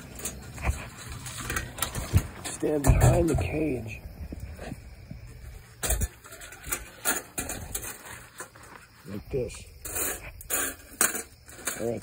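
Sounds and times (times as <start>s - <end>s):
wire trap rattling and clinking: 9.9s - 12.0s.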